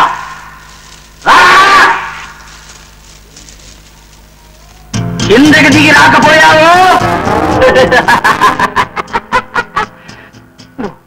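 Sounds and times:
man shouting: 1.2 - 2.3, 5.3 - 7.0.

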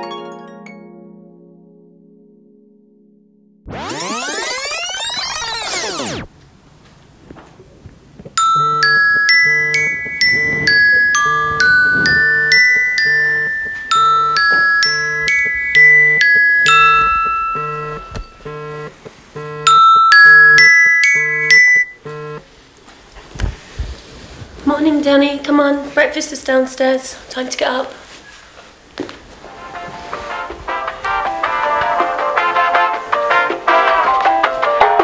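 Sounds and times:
electronic chime melody: 3.7 - 6.2, 8.4 - 22.4
alarm tone ringing: 3.7 - 6.3, 8.4 - 22.4
pulsing low tone: 9.5 - 14.4.

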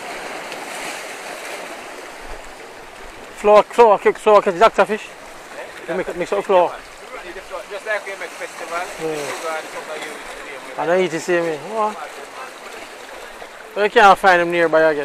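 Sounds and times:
surf washing among rocks: 0.0 - 15.0
men talking loudly: 3.3 - 15.0.

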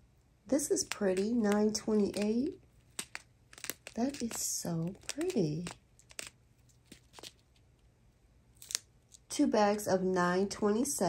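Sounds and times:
plastic bags crinkling: 0.8 - 7.6.

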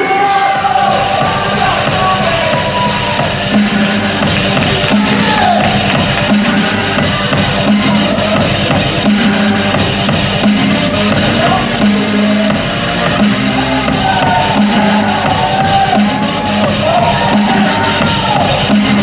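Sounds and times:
loud rock music with guitar: 0.0 - 19.0.

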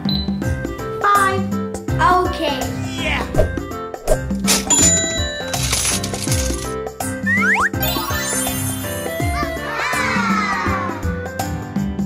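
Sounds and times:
background music: 0.0 - 12.0
toy cash register coin-drop: 4.5 - 6.8.

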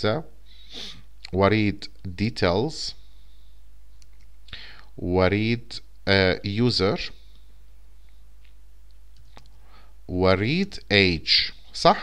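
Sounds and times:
man speaking: 0.0 - 0.3, 1.3 - 3.0, 5.0 - 7.2, 10.1 - 12.0
steady low hum: 0.0 - 12.0
man breathing: 0.4 - 1.1, 3.0 - 3.8, 4.5 - 5.0, 9.5 - 10.0.

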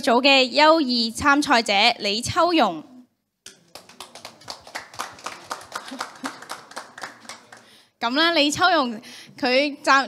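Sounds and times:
audience clapping: 3.5 - 7.8.

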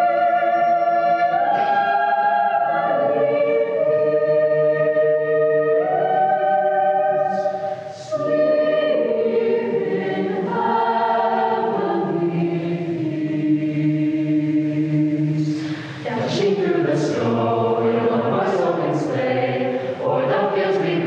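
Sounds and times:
choir singing held chords: 0.0 - 21.0.

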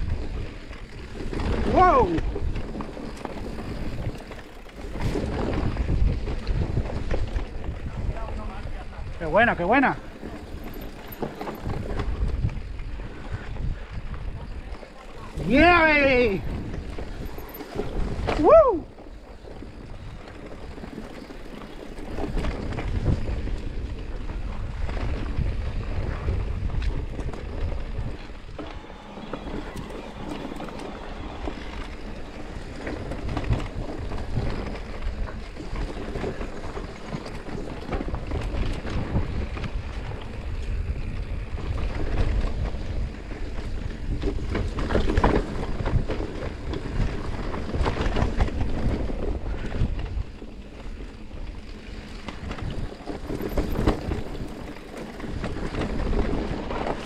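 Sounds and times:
tyres on dirt and stones: 0.0 - 8.6, 9.2 - 57.0
bike knocking and rattling: 0.0 - 57.0
wind rumbling on microphone: 0.0 - 57.0.

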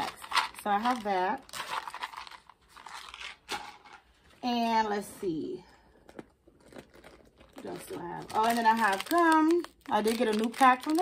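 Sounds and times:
rustling and crinkling in handbag: 0.0 - 4.4, 5.9 - 11.0.

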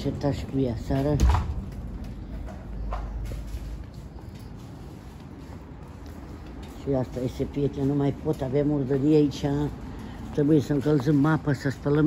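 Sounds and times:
woman's voice: 0.0 - 1.5, 6.7 - 12.0
low microphone rumble: 0.0 - 4.2.

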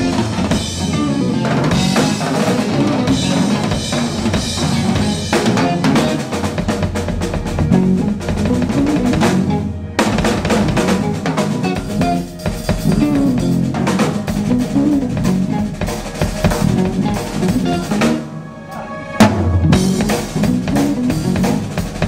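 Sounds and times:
bass drum: 0.0 - 18.2, 19.5 - 22.0
electric bass: 0.0 - 18.4, 19.2 - 22.0
full band hit: 0.0 - 22.0.

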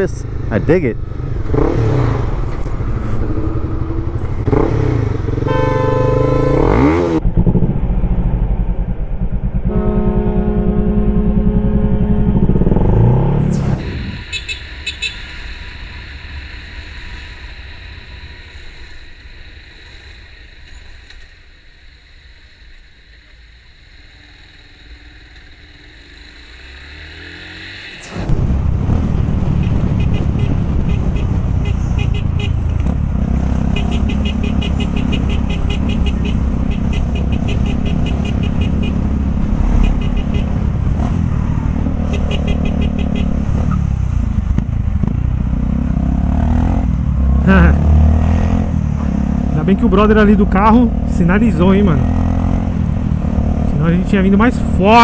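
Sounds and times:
motorcycle engine: 0.0 - 21.2, 22.8 - 55.0
wind rumble: 6.7 - 26.6, 28.0 - 49.6.

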